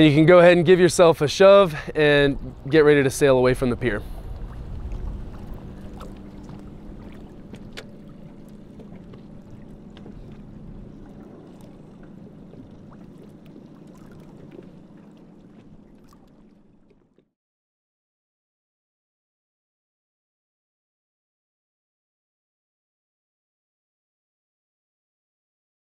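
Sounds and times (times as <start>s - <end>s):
steady low hum: 0.0s - 16.9s
water and air noise: 0.0s - 17.4s
boat clicks and knocks: 4.3s - 14.7s.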